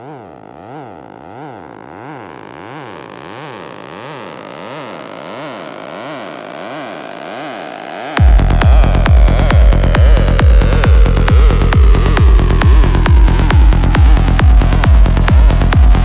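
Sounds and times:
rising noise sweep: 0:00.0 - 0:16.0
synthesizer tone sweeping in pitch: 0:00.0 - 0:16.0.

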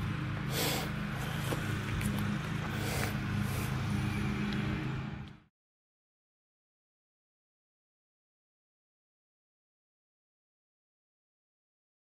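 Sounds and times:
engine idling: 0:00.0 - 0:05.5.

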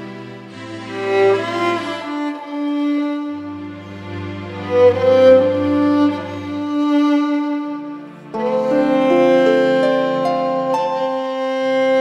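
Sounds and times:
solo violin melody: 0:00.0 - 0:12.0.

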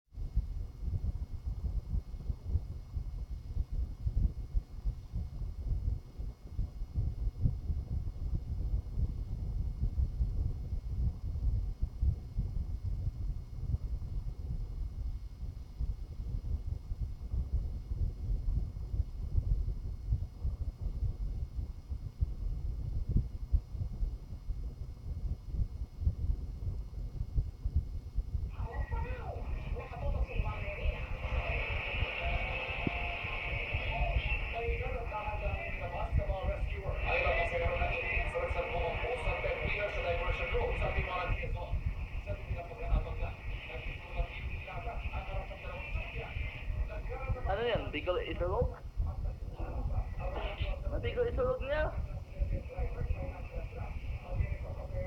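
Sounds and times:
low microphone rumble: 0:00.2 - 0:55.0
faint high whine: 0:27.3 - 0:55.0
tv news through phone speaker: 0:28.5 - 0:55.0.

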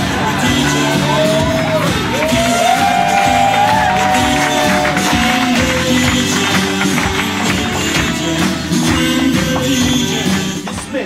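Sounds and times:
loud music with steady beat: 0:00.0 - 0:11.0.

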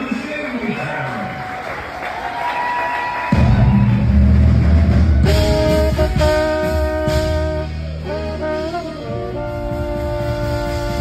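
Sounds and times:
light applause: 0:00.0 - 0:05.2
audience noise: 0:00.0 - 0:11.0
live band loud low note: 0:03.2 - 0:11.0.

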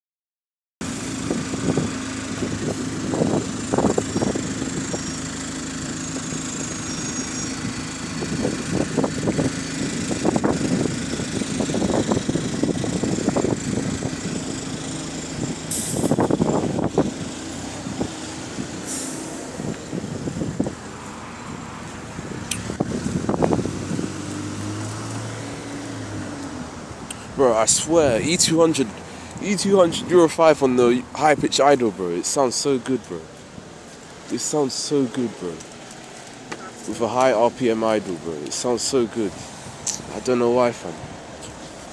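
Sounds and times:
bus engine idling: 0:00.8 - 0:41.9
air hisses: 0:15.7 - 0:16.3.

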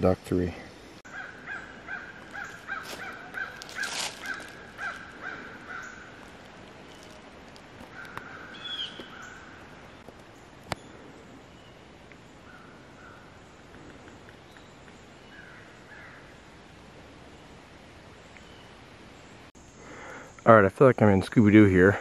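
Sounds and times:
bird calling repeated notes: 0:01.1 - 0:06.2, 0:07.9 - 0:10.0.

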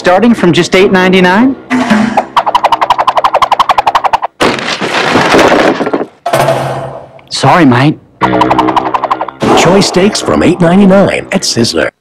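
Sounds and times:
fast rattling rhythm: 0:02.2 - 0:04.3, 0:08.2 - 0:11.1.

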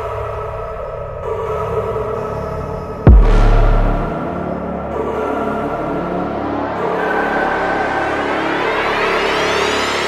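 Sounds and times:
rising synth sweep: 0:03.1 - 0:04.6.

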